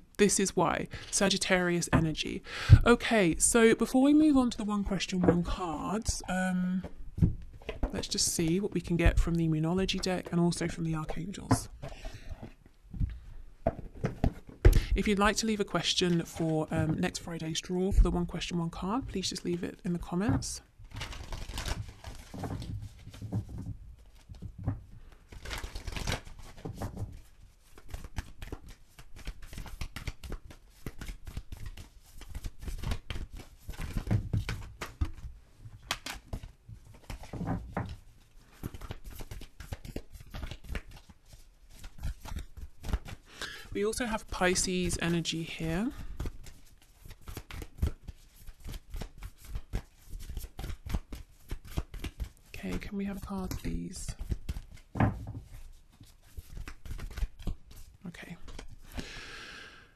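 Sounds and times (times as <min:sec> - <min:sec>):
card decks handled on wooden table: 0:06.8 - 0:08.2, 0:10.6 - 0:14.9, 0:20.3 - 0:43.2, 0:45.9 - 0:58.9.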